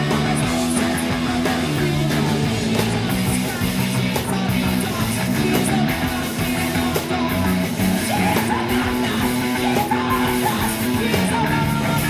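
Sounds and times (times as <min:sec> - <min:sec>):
bass guitar: 0:00.0 - 0:12.0
drums: 0:00.0 - 0:12.0
electric guitar: 0:00.0 - 0:12.0.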